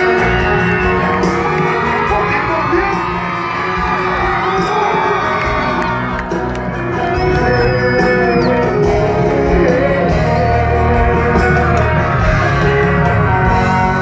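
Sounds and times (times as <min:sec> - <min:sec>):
crowd shouting and whooping: 0:00.0 - 0:14.0
live band music: 0:00.0 - 0:14.0.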